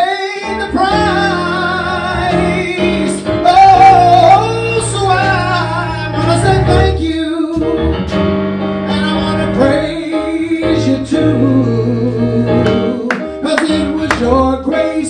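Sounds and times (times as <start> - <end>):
keyboard accompaniment: 0.0 - 15.0.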